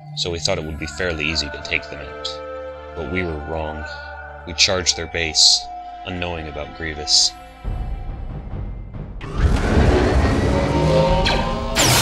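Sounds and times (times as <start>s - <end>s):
engine-like whine: 9.2s - 12.0s
sharp blaster zaps: 11.8s - 12.0s.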